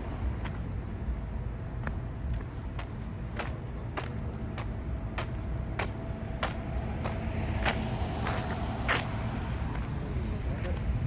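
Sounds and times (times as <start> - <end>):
footsteps on pavement: 0.1 - 11.0.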